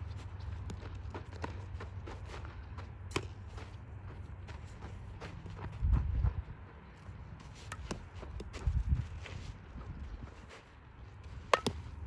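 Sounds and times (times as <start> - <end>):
bat striking softball: 7.7 - 8.5, 11.4 - 12.0
ball knock: 11.5 - 11.8.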